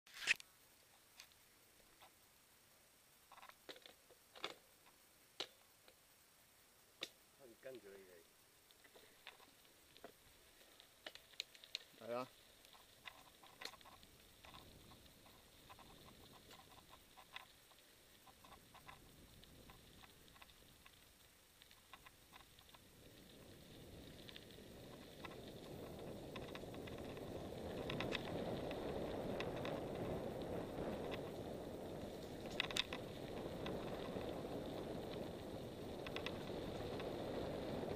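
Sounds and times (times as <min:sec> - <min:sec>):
bike tyres rolling on gravel: 0:07.5 - 0:37.9
bicycle clicks and rattles: 0:24.0 - 0:37.9.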